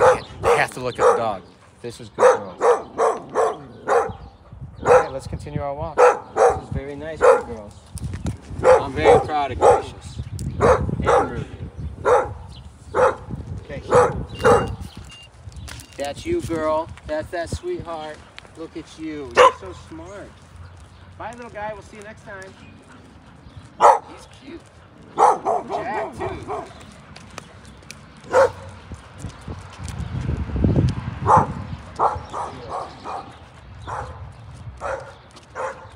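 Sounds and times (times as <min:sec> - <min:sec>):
dog barking: 0:00.0 - 0:01.5, 0:02.2 - 0:05.2, 0:06.0 - 0:07.6, 0:08.6 - 0:10.0, 0:10.6 - 0:14.8, 0:19.3 - 0:19.8, 0:23.8 - 0:24.3, 0:25.1 - 0:26.8, 0:28.3 - 0:28.7, 0:31.2 - 0:35.9.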